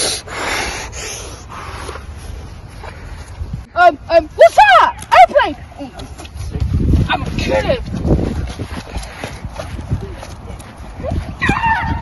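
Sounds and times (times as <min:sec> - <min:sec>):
person panting hard: 0:00.0 - 0:03.4, 0:08.2 - 0:11.3.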